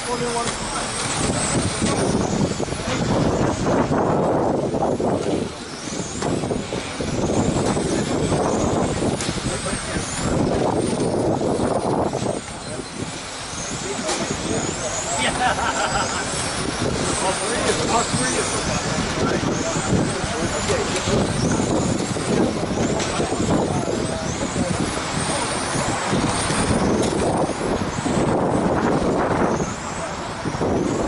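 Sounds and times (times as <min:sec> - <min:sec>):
loud rushing noise: 0:00.0 - 0:31.0
rc car motors whining: 0:00.0 - 0:31.0.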